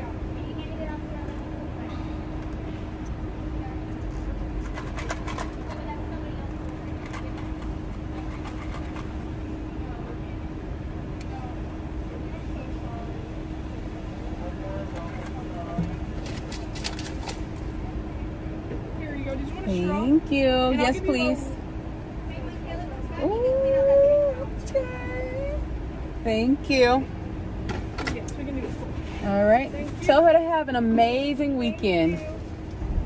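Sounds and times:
car interior rumble and hum: 0:00.0 - 0:33.0.

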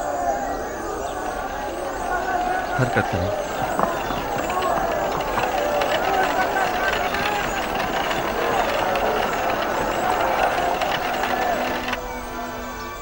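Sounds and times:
crowd cheering and calling out: 0:00.0 - 0:12.0
music: 0:00.1 - 0:13.0.

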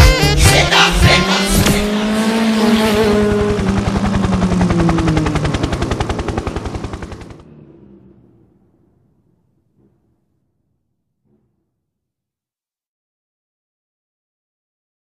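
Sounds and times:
rapid synth stutter: 0:00.0 - 0:08.4.

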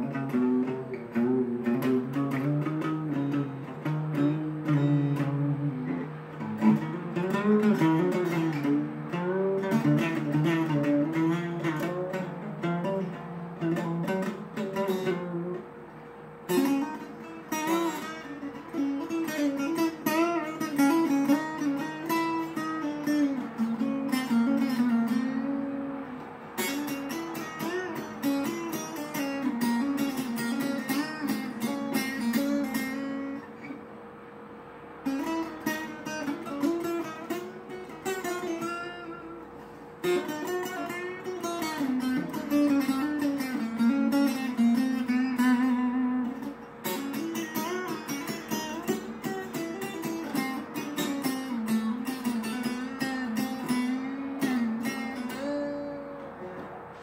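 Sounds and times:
acoustic guitar playing: 0:00.0 - 0:57.0.

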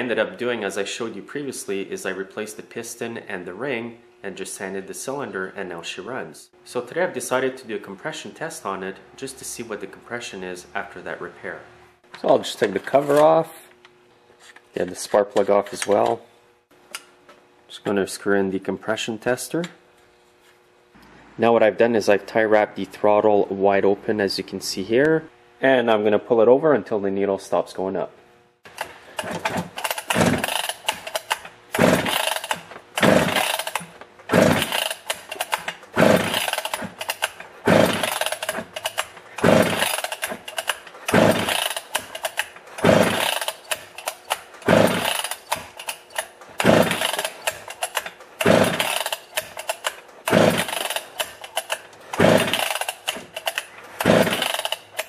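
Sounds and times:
chainsaw recoil starter pulls: 0:12.5 - 0:13.5, 0:28.7 - 0:55.0.

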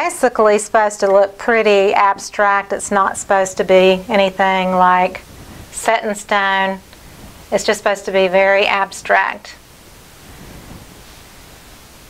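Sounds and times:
room noise hiss: 0:00.0 - 0:12.0.

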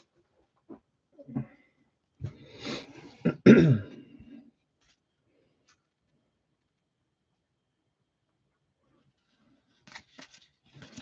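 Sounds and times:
man clearing his throat: 0:03.2 - 0:04.1.

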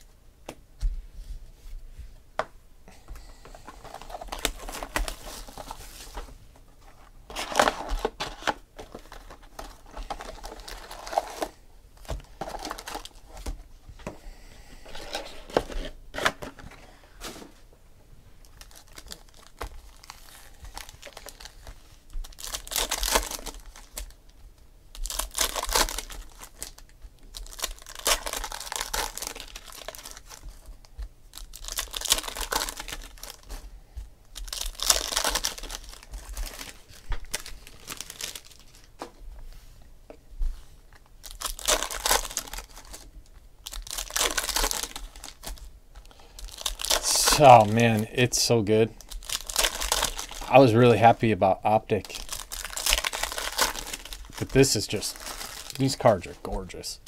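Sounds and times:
foil wrappers tearing and crinkling: 0:03.6 - 0:06.3, 0:07.3 - 0:13.4, 0:18.4 - 0:24.2, 0:24.9 - 0:30.6, 0:31.3 - 0:33.6, 0:34.3 - 0:38.9, 0:41.2 - 0:51.2, 0:51.9 - 0:56.8.

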